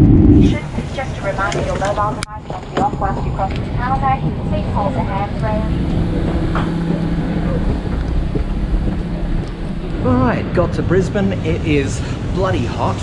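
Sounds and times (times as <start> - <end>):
airliner cabin rumble: 0.0 - 13.0
passengers' voices: 0.0 - 13.0
steady low hum: 0.0 - 13.0.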